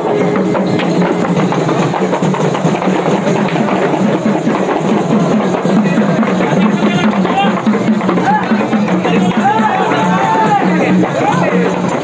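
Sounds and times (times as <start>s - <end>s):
frame drums in fast rhythm: 0.0s - 12.0s.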